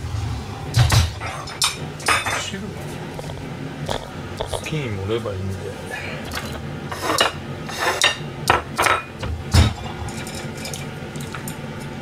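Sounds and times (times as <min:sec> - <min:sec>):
ceramic dishes scraping on steel counter: 0:06.3 - 0:09.1, 0:09.8 - 0:10.8.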